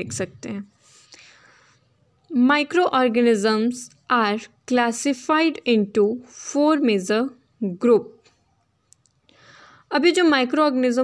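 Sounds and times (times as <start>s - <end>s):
woman speaking: 0.0s - 0.8s, 2.3s - 8.2s, 9.9s - 11.0s
woman breathing in: 0.8s - 2.0s, 9.3s - 9.9s.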